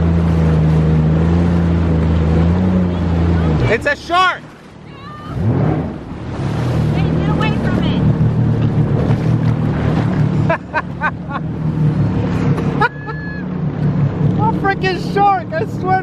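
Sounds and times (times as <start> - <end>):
jet ski engine running: 0.0 - 16.0
water rushing and splashing: 0.0 - 16.0.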